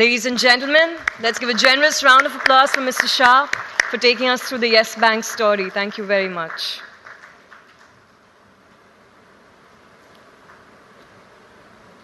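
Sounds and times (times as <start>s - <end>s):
audience applause: 0.9s - 7.9s.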